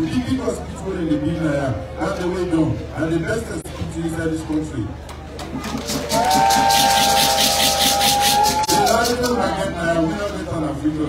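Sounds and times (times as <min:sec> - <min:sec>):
fast rhythmic rattle: 0:05.6 - 0:09.5.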